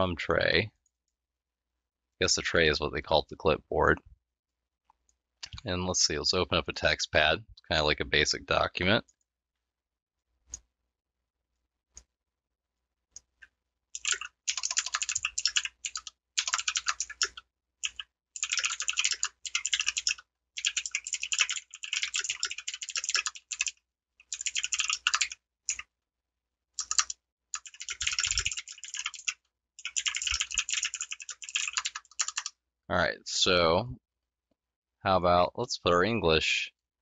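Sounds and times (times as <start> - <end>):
computer keyboard typing: 14.0 - 25.8, 26.8 - 32.5.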